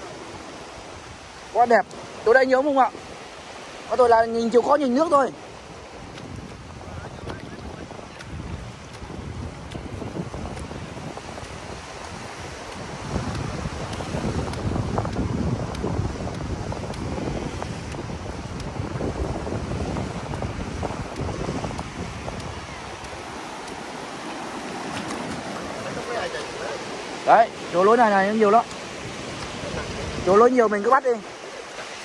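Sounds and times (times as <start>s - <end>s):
small surf waves: 0.0s - 32.0s
wind buffeting microphone: 0.0s - 32.0s.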